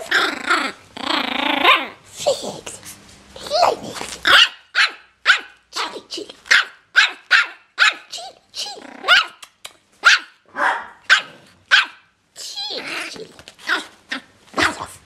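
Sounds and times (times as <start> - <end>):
puppy yapping: 3.6 - 12.1.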